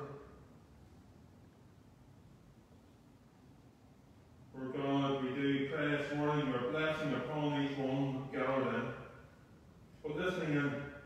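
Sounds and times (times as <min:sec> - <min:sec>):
man praying aloud: 0:04.6 - 0:09.1.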